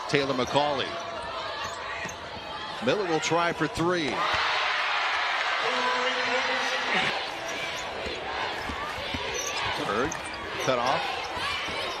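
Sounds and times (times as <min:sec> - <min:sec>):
crowd noise in a hall: 0:00.0 - 0:12.0.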